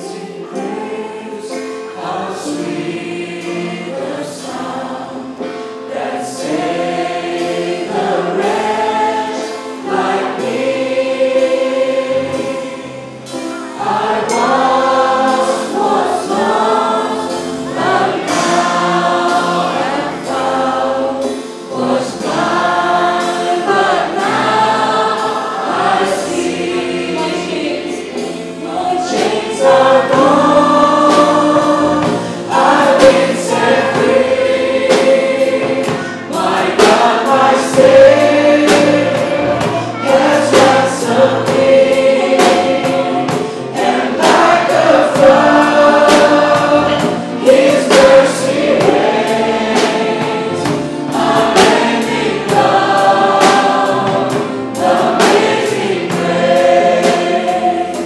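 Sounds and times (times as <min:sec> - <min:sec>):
many voices singing together: 0:00.0 - 0:58.0
band with drum kit and cymbals: 0:03.4 - 0:58.0.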